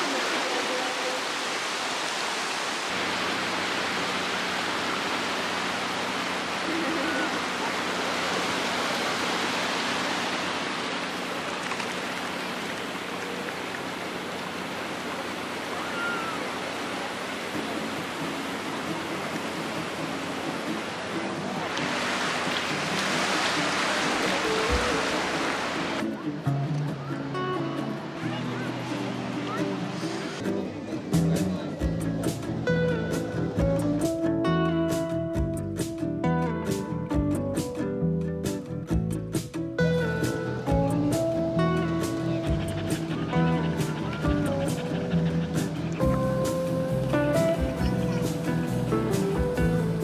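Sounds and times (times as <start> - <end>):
waves washing onto shore: 0.0 - 26.2
quiet background music: 17.2 - 50.0.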